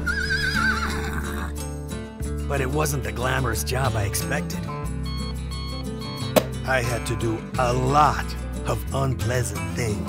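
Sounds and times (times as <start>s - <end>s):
horse whinnying: 0.0s - 1.6s
background music: 0.0s - 10.0s.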